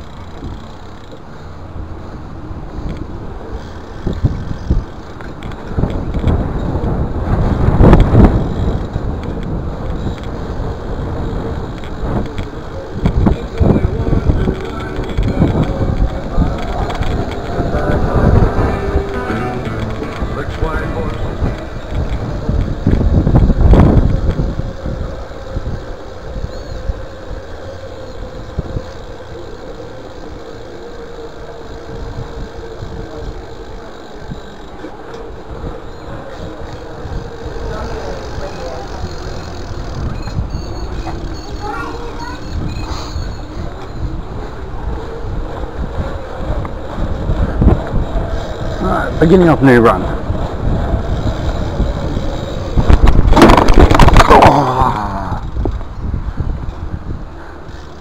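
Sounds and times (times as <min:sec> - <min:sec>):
wind buffeting microphone: 0:00.0 - 0:58.0
bicycle rolling over brick pavers: 0:02.0 - 0:25.4, 0:28.6 - 0:58.0.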